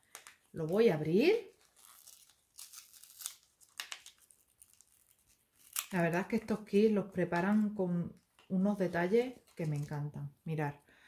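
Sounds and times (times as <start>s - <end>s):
wrapping crinkling and rustling: 0.0s - 10.1s.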